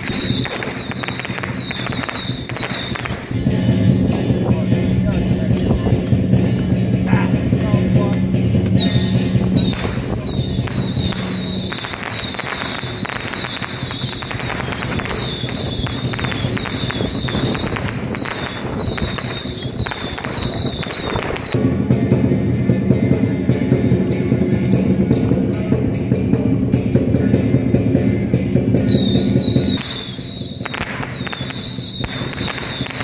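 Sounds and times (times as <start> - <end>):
firecrackers crackling: 0.0 - 22.9, 28.5 - 33.0
procession music with drums: 0.0 - 33.0.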